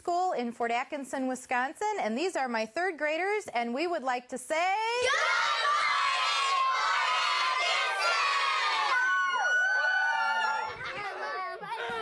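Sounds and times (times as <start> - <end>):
children cheering and whooping: 5.0 - 12.0
children shouting together: 5.0 - 12.0.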